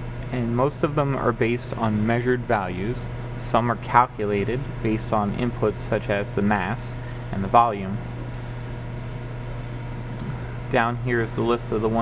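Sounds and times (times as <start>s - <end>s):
low machine hum with hiss: 0.0s - 12.0s.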